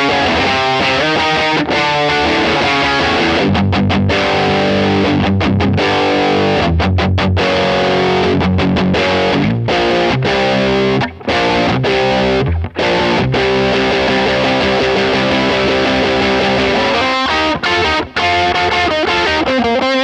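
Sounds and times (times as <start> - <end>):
distorted electric guitar chords: 0.0 - 20.0.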